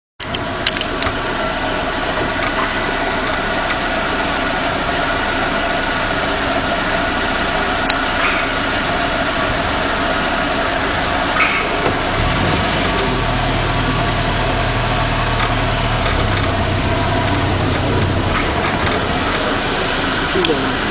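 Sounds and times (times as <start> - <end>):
small clicks: 0.2 - 1.2
vehicle engine idling: 0.2 - 20.9.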